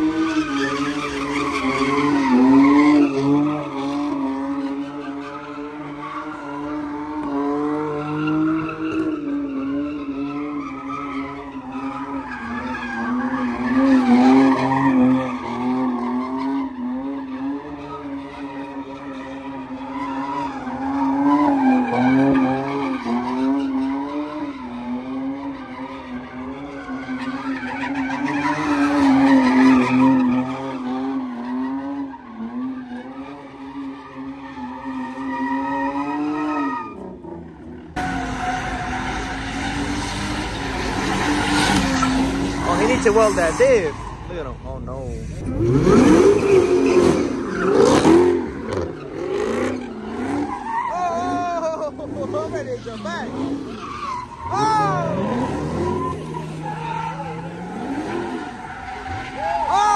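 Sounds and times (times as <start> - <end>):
car engine revving high: 35.6 - 59.2
tyres squealing: 38.0 - 59.9.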